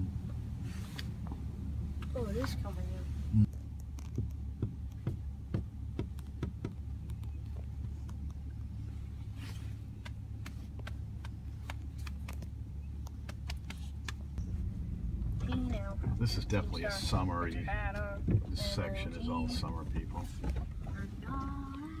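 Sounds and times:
engine and tyres rumbling: 0:00.0 - 0:22.0
knocks and rattles over bumps: 0:04.0 - 0:08.9, 0:09.8 - 0:18.8, 0:19.5 - 0:22.0.

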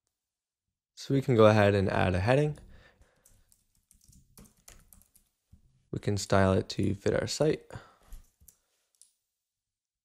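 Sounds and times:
faint keyboard typing: 0:03.0 - 0:05.4.

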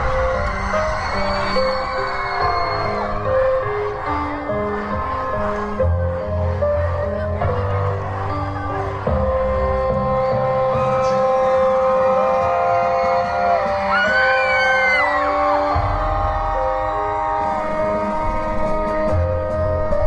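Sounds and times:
deep bass layer: 0:00.0 - 0:11.0, 0:15.2 - 0:20.0
dark orchestral music: 0:00.0 - 0:20.0.

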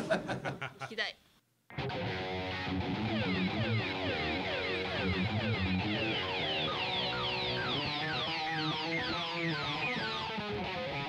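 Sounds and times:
electric guitars playing: 0:01.7 - 0:11.0
falling guitar sweep: 0:01.7 - 0:11.0.

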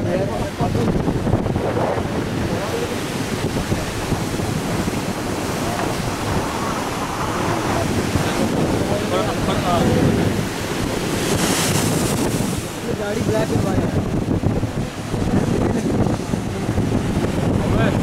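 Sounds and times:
surf breaking on rocky shore: 0:00.0 - 0:18.0
wind buffeting microphone: 0:00.0 - 0:18.0.

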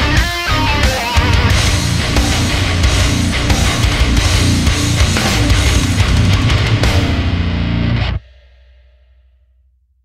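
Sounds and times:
distorted electric guitar: 0:00.0 - 0:08.2
bass and drums: 0:00.0 - 0:08.9.

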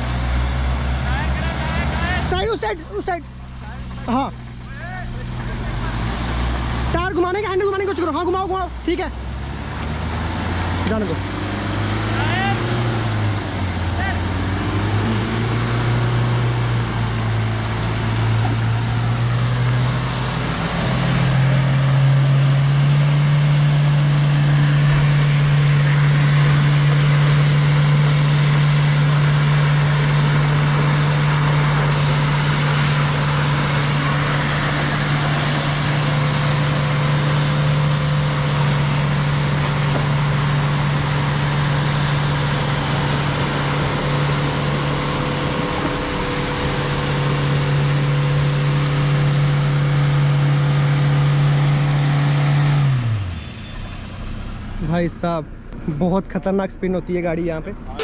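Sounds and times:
engine revving: 0:00.0 - 0:56.1.

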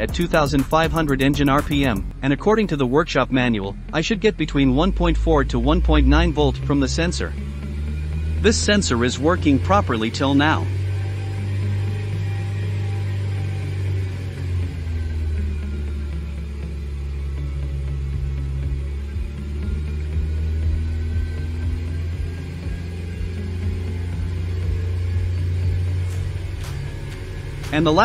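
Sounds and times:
car engine at raised revs: 0:00.0 - 0:28.0.

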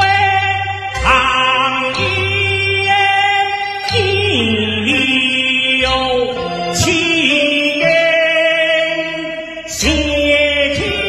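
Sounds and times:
low instrumental accompaniment: 0:00.0 - 0:11.0
man singing opera into microphone: 0:00.0 - 0:11.0.

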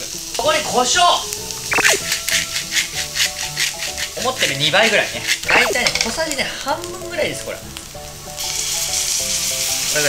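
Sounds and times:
background music: 0:00.4 - 0:09.7.

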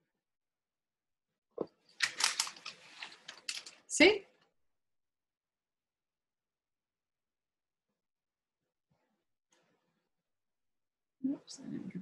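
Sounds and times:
small clicks and rustles: 0:02.0 - 0:03.8.

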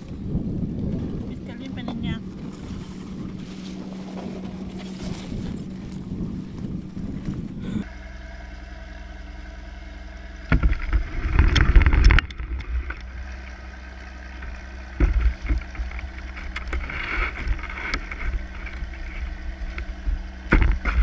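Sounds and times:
wind buffeting microphone: 0:00.0 - 0:07.9
steady low hum: 0:00.0 - 0:21.0.

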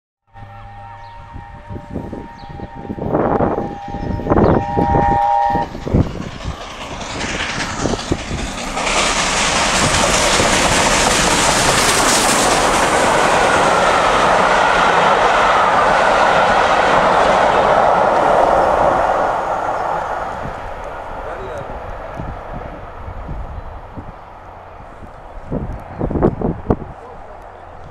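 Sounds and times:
steam train passing at speed: 0:00.4 - 0:27.9.

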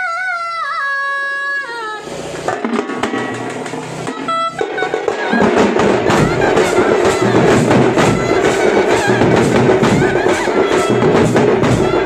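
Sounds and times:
frame drums: 0:02.0 - 0:12.0
large bass drums: 0:02.4 - 0:12.0.

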